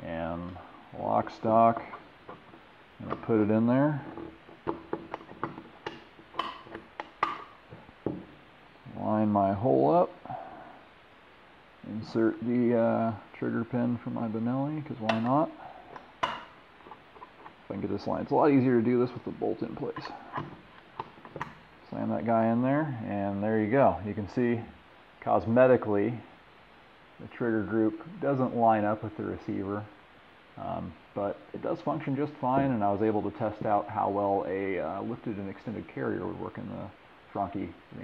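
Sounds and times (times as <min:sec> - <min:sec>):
gun parts clicking and knocking: 0:04.0 - 0:08.4, 0:15.9 - 0:17.6, 0:20.0 - 0:21.6.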